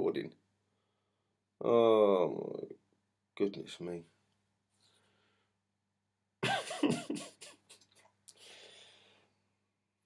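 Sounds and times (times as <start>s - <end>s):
man laughing: 6.4s - 8.0s.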